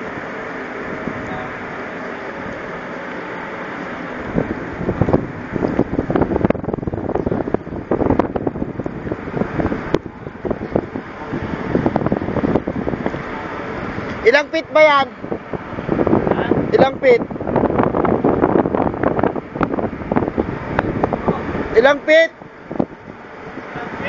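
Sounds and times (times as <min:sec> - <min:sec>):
ship machinery drone: 0:00.0 - 0:24.0
wind buffeting microphone: 0:00.0 - 0:24.0.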